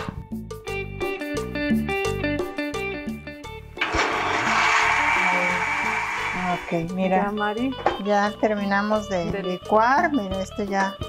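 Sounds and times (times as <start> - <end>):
guitar music: 1.9 - 8.1
blender whirring: 3.8 - 7.0.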